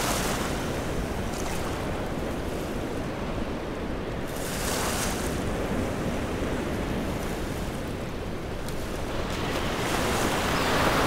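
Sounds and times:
small waves washing ashore: 0.0 - 11.0
wind rumbling on microphone: 0.0 - 11.0.

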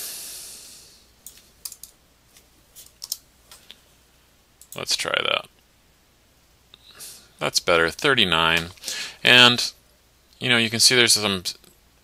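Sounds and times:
soft hiss: 0.0 - 12.0
keyboard and mouse clicks: 1.2 - 2.0, 2.8 - 3.6.

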